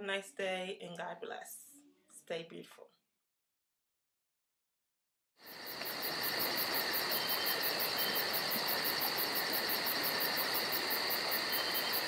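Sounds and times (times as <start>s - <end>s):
constant hiss: 5.4s - 12.0s.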